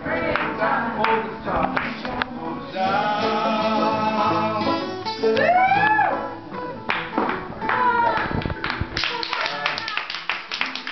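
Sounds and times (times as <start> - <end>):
group clapping: 0.3 - 2.0, 6.9 - 10.9.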